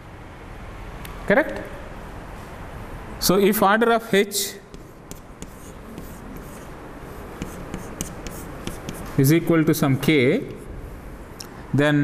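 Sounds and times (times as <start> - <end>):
chalk scratching on blackboard: 4.7 - 9.4
chalk tapping: 4.7 - 9.4.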